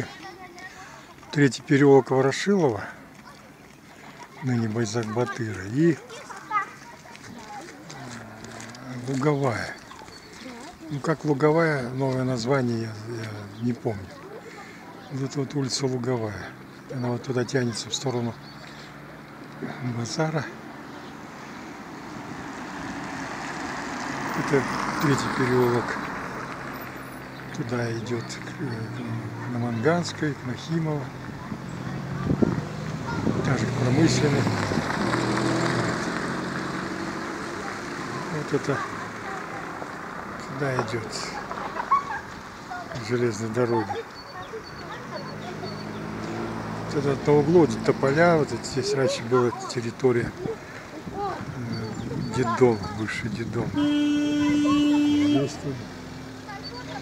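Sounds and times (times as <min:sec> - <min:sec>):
motor vehicle engine drone: 0:18.0 - 0:57.0.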